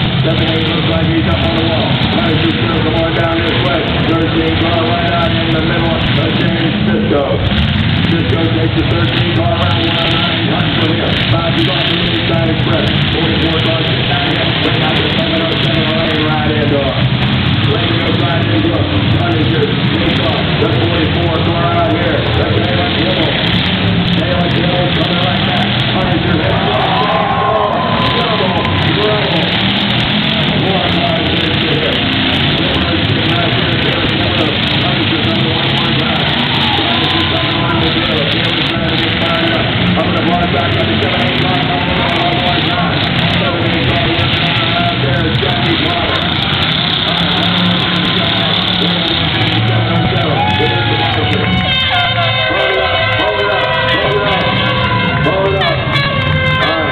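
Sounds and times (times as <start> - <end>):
car engines running loudly: 0.0 - 56.9
indistinct public address voice: 0.0 - 56.9.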